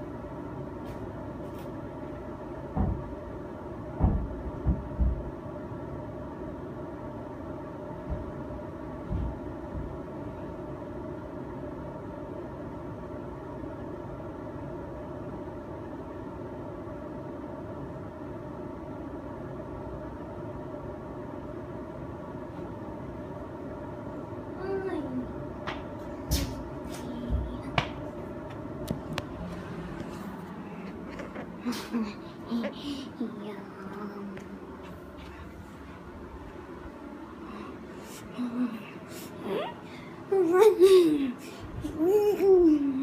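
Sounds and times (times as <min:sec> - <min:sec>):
mechanical hum: 0:00.0 - 0:43.0.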